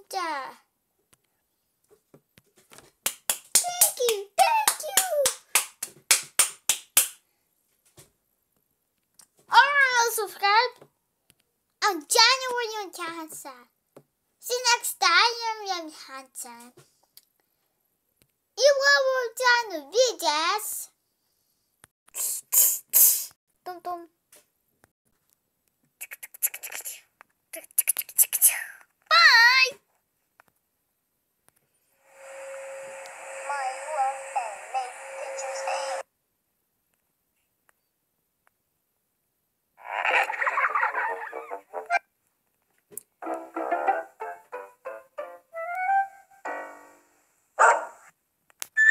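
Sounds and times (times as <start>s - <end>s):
sharp hand claps: 3.0s - 7.2s
child whispering: 26.0s - 28.9s
child singing high note: 33.5s - 35.9s.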